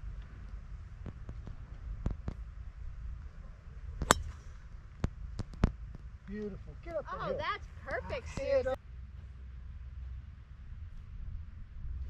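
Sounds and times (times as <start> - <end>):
wind rumble on microphone: 0.0 - 6.2, 8.8 - 12.0
golf club striking ball: 4.0 - 4.6.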